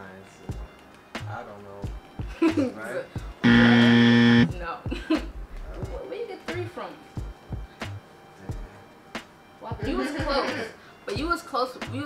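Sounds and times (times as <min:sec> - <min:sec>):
game show buzzer: 0:03.4 - 0:04.5.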